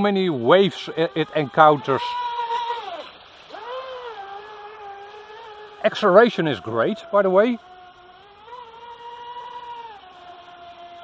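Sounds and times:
electric motor whining: 3.0 - 11.0.

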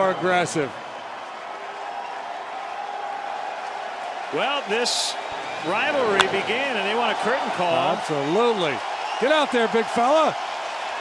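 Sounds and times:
crowd cheering and applauding: 0.0 - 11.0.

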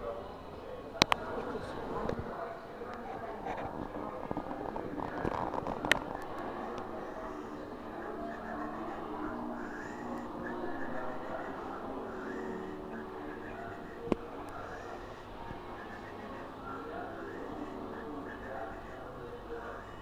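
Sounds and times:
indistinct chatter: 0.0 - 20.0.

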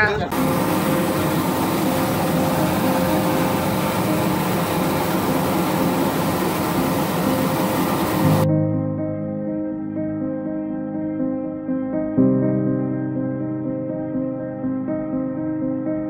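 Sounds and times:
helicopter turbines and rotor: 0.3 - 8.4
faint hum: 0.3 - 8.5.

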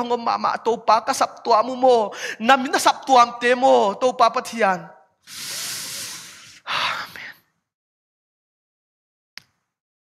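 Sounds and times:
man breathing into microphone: 5.2 - 7.4.

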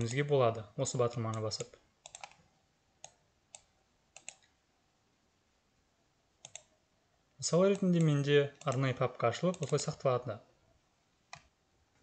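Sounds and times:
computer mouse clicks: 1.0 - 2.4, 3.0 - 4.6, 6.4 - 6.7, 7.7 - 10.0, 11.3 - 11.5.

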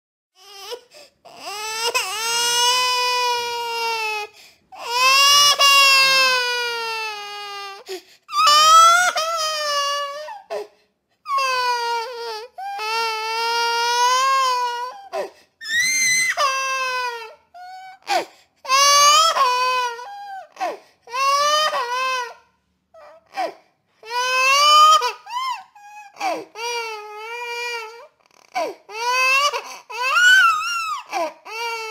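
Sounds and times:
baby crying: 0.4 - 31.9.

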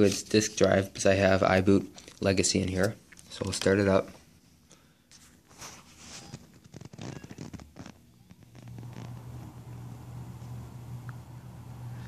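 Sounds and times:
laptop humming: 6.1 - 12.0.

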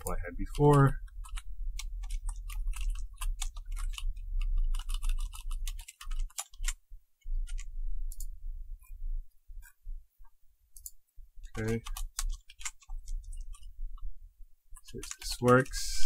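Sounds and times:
low hum: 0.0 - 5.8, 6.7 - 15.1
keyboard typing: 0.0 - 8.4, 10.8 - 14.1, 14.7 - 16.0.

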